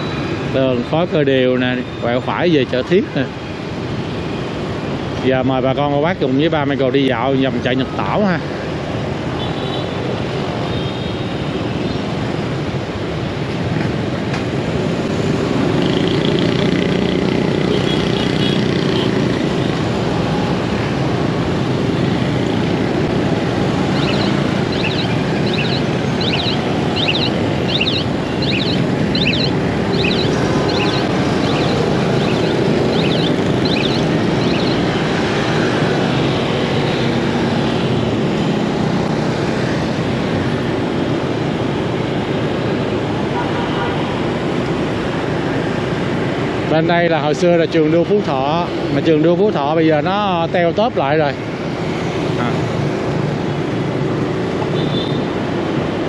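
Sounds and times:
surrounding traffic: 0:00.0 - 0:56.0
wind: 0:00.0 - 0:56.0
short high-pitched chirping beeps: 0:23.9 - 0:34.8.

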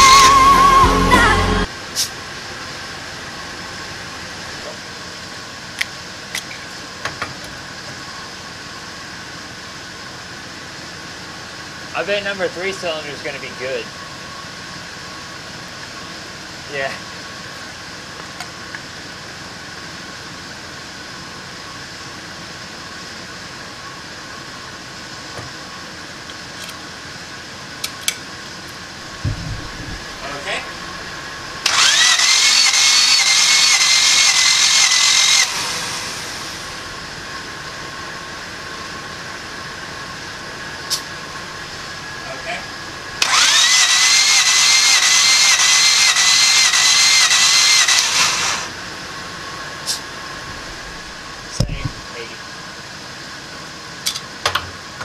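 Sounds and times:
starter motor cranking engine: 0:29.0 - 0:37.0, 0:43.1 - 0:48.8.

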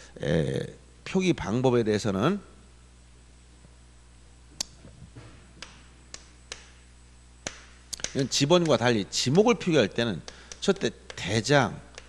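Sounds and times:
chalk tapping on chalkboard: 0:07.4 - 0:08.9, 0:10.2 - 0:11.4.

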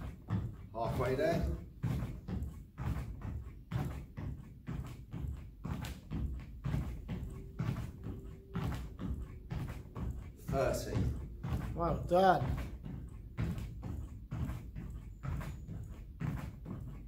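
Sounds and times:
feet thudding on exercise mat: 0:00.0 - 0:17.0.

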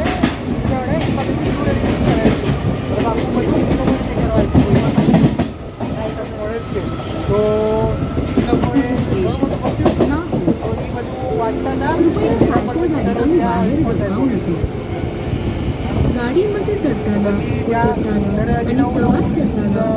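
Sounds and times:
passengers' voices: 0:00.0 - 0:19.9
train rumble: 0:00.0 - 0:19.9.

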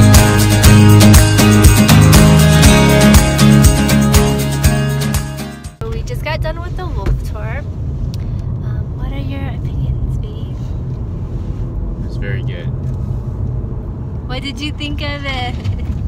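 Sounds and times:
car cabin road rumble: 0:05.8 - 0:16.0.

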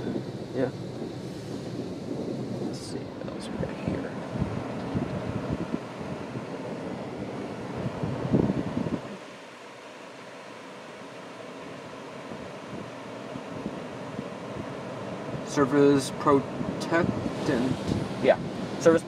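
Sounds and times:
steady hiss: 0:09.0 - 0:19.0
car wash spraying: 0:13.0 - 0:19.0.

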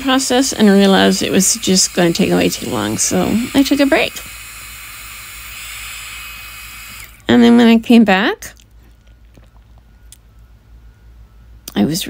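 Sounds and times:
heat gun blowing: 0:00.0 - 0:07.5.

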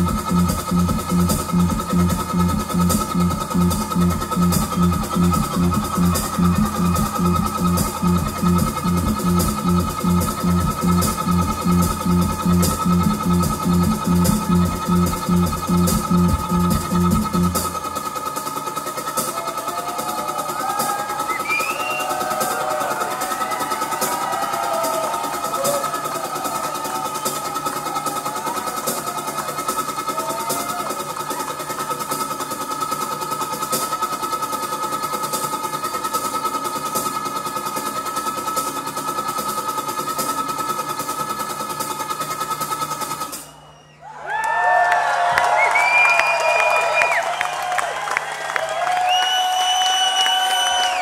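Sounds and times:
high electronic drone: 0:00.0 - 0:19.0
crowd cheering and whistling: 0:00.0 - 0:32.3, 0:43.0 - 0:51.0
crowd whooping and shouting: 0:19.2 - 0:31.9, 0:43.3 - 0:51.0.

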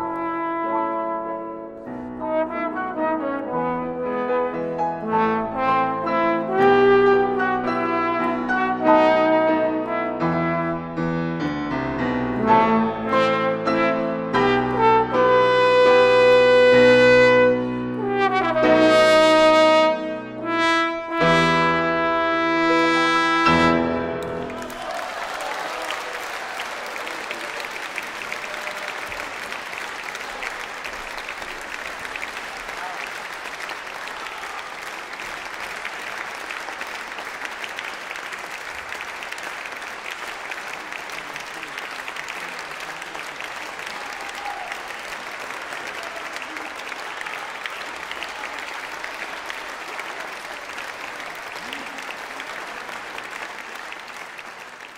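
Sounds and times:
piano: 0:00.0 - 0:54.9
audience applauding: 0:14.4 - 0:19.7, 0:24.2 - 0:54.9.

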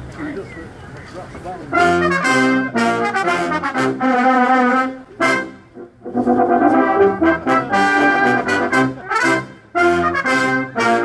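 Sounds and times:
crowd murmuring: 0:00.0 - 0:11.0
brass band playing: 0:01.7 - 0:11.0.

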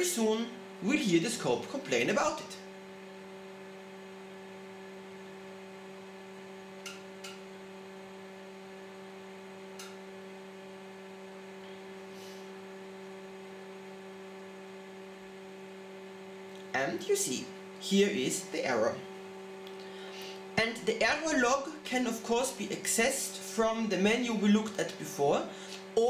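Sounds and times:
oscilloscope hum: 0:00.0 - 0:26.0.

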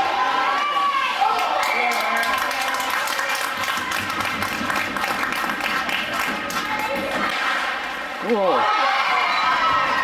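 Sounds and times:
crowd chatter: 0:00.0 - 0:10.0
spectators clapping: 0:01.3 - 0:07.4.

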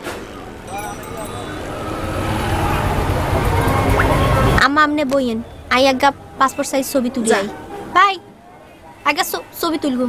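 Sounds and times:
low engine rumble: 0:00.0 - 0:08.0
faint voices: 0:00.0 - 0:10.0.

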